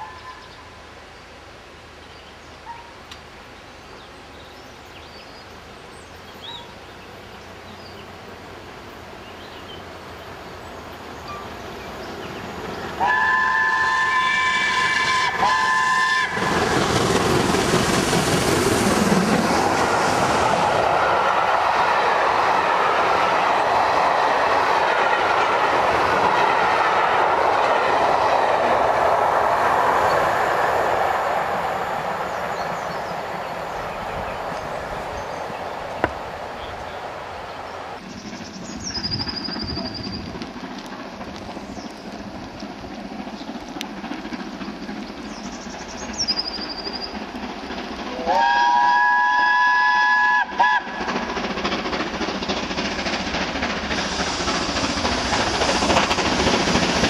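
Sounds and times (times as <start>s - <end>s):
locomotive exhaust and wheels on rail: 0.0s - 57.0s
steam locomotive whistle: 13.0s - 16.8s, 48.1s - 51.1s.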